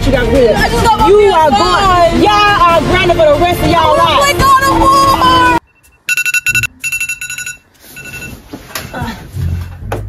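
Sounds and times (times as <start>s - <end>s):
phone alarm beeping: 5.6s - 8.4s.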